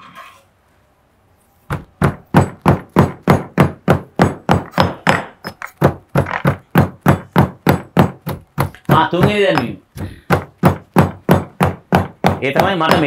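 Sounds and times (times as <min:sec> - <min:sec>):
stone pestle pounding in mortar: 0:01.7 - 0:13.0.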